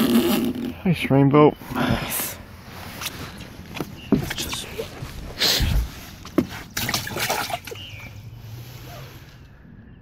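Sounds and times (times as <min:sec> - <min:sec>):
water splashing: 0:04.1 - 0:08.1.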